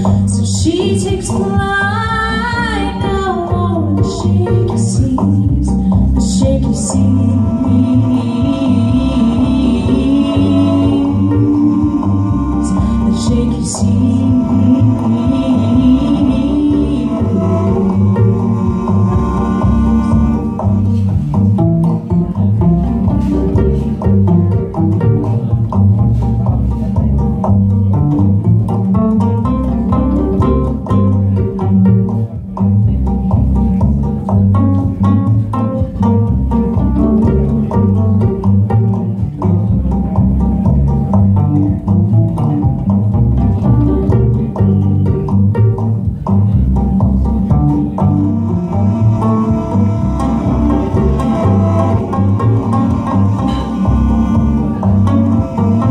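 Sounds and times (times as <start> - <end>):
cello playing: 0.0 - 55.9
double bass playing: 0.0 - 55.9.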